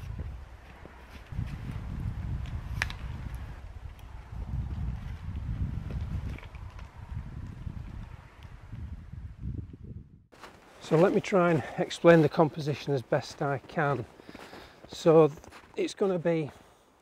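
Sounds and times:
wind buffeting microphone: 0.0 - 10.3.

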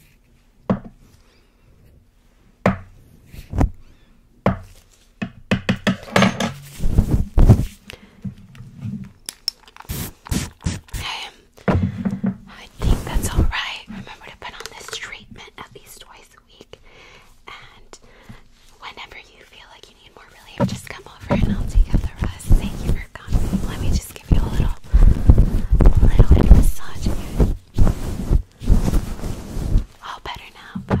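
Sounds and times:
fingers scratching furry windscreen: 6.8 - 7.7, 21.2 - 29.9
short spray hiss: 9.9 - 11.0
taps and clicks on microphone: 14.5 - 15.0.

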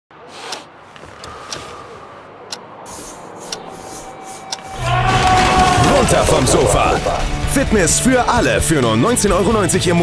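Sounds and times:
sharp ticks: 2.5 - 4.7
wall crashing open: 4.8 - 7.2.

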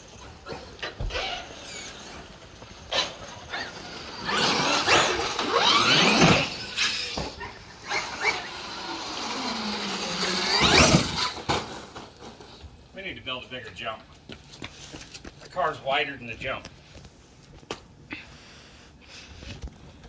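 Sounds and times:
electric motor whining: 0.0 - 11.6.

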